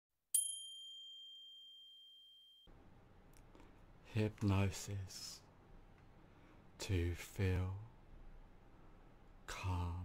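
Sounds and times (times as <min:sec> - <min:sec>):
small high-pitched bell ringing: 0:00.3 - 0:02.7.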